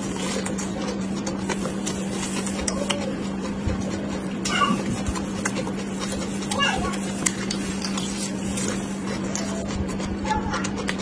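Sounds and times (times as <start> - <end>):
close chewing and mouth sounds: 0.0 - 11.0
steady low hum: 0.0 - 11.0.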